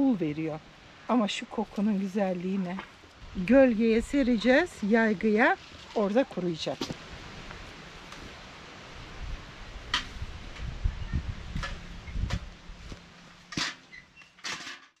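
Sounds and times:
branches rustling: 0.0s - 14.5s
low rumble: 7.1s - 13.6s.

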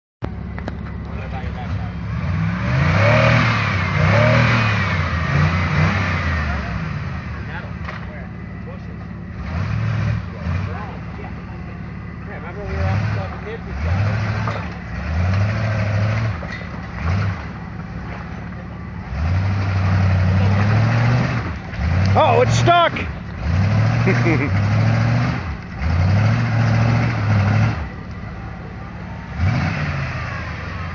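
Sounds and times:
off-road engine revving: 0.2s - 30.9s.

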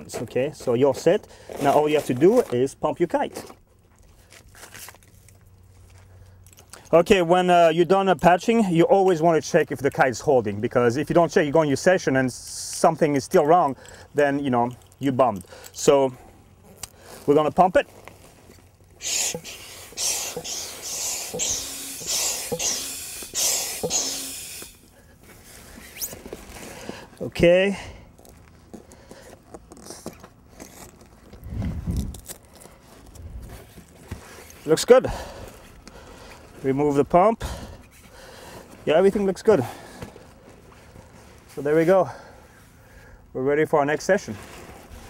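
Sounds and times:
low steady hum: 0.0s - 45.0s
hand pump hissing strokes: 19.0s - 27.0s
faint pump click: 20.3s - 24.7s.

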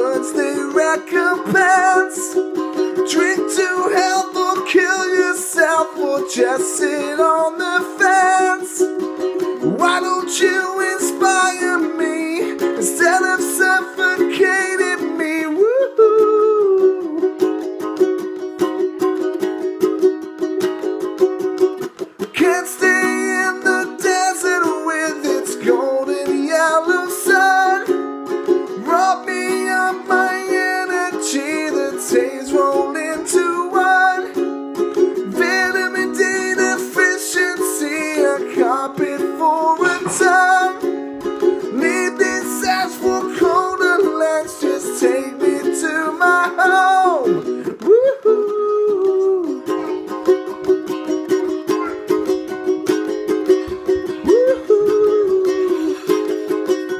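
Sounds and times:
ukulele strumming: 0.0s - 56.9s.

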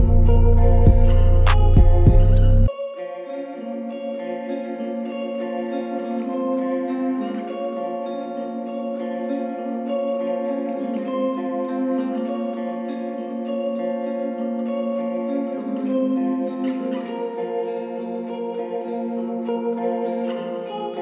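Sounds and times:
plucked guitar loop with echo: 0.0s - 21.0s.

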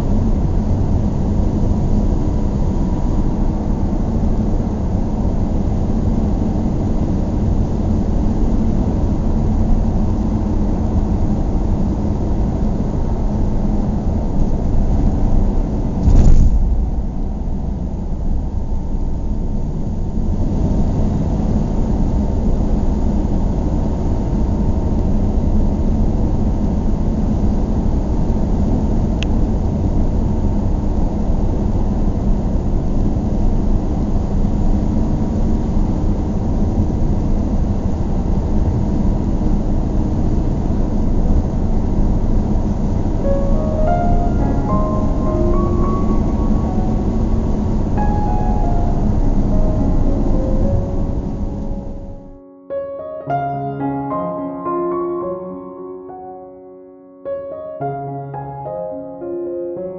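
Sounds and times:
car driving rumble: 14.2s - 19.7s
loud thump: 16.0s - 18.3s.

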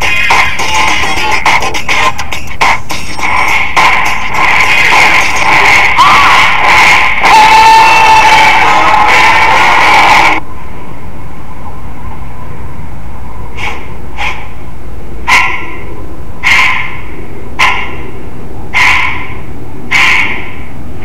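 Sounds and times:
loud music: 0.0s - 10.4s
dog barking: 15.3s - 15.8s, 16.4s - 17.0s, 17.6s - 18.0s, 18.8s - 20.4s.

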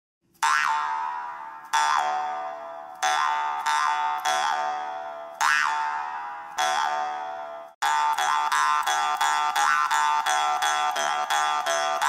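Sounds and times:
jaw harp twanging: 0.4s - 12.0s.

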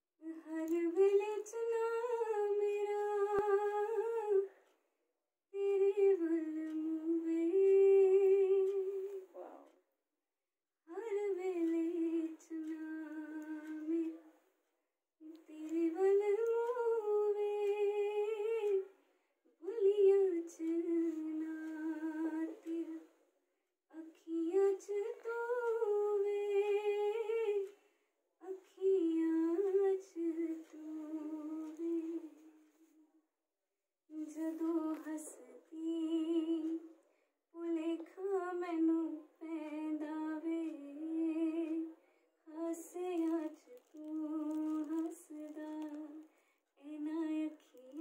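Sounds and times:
woman singing unaccompanied: 0.2s - 4.6s, 5.5s - 9.3s, 10.9s - 14.3s, 15.2s - 19.0s, 19.6s - 23.1s, 23.9s - 27.8s, 28.4s - 32.7s, 34.1s - 48.0s.

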